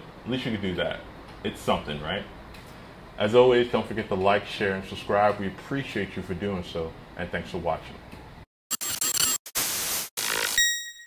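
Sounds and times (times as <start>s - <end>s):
static-like hiss bursts: 8.8s - 10.6s
bright ringing ping: 10.6s - 11.0s.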